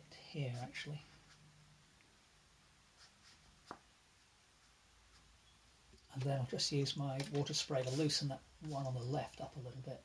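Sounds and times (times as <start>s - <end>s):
brush dabbing on paper: 2.9s - 5.4s, 6.2s - 9.5s.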